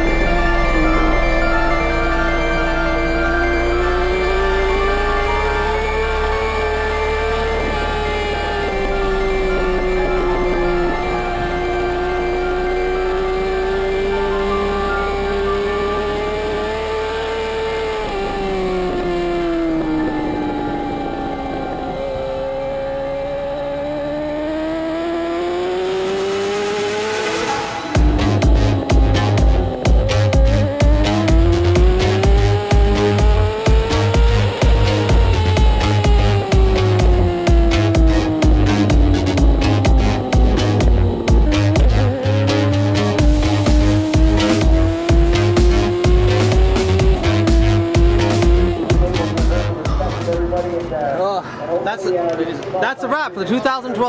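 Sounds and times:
rising sweep: 0.0s - 51.0s
motorcycle engine revving: 0.0s - 51.2s
electronic music: 0.0s - 51.4s.

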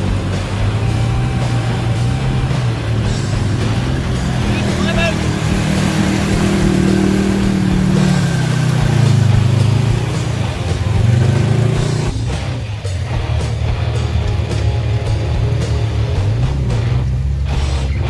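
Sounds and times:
engine revving: 0.0s - 18.0s
rock music with steady beat: 0.0s - 18.0s.

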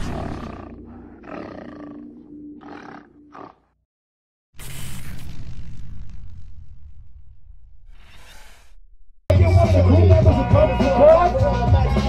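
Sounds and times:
animal roar: 0.0s - 3.8s.

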